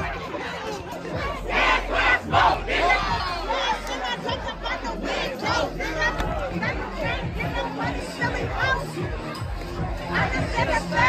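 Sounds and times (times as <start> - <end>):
crowd shouting together: 0.0 - 11.0.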